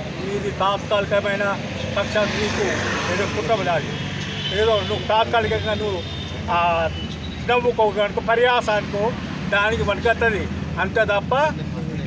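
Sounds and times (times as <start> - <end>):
low hum of traffic: 0.0 - 12.0
man speaking: 0.0 - 12.0.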